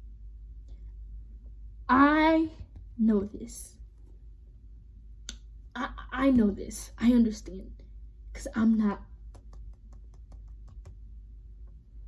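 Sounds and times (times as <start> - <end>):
girl speaking: 1.9 - 3.8, 5.8 - 9.1.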